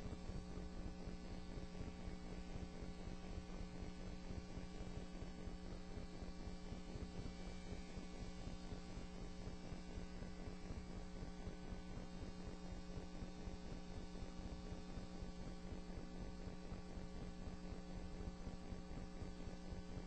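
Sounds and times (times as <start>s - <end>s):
mains hum: 0.0s - 20.0s.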